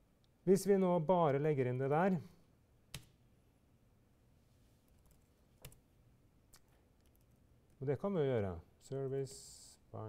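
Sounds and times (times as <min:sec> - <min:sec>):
faint keyboard keystrokes: 0:06.5 - 0:07.4.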